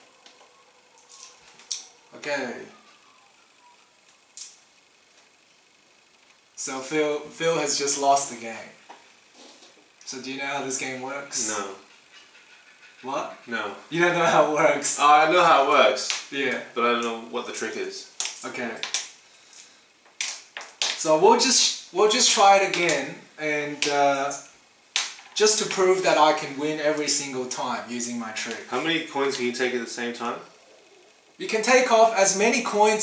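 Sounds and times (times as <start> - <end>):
coins clinking on glass table: 18.2 - 21.0.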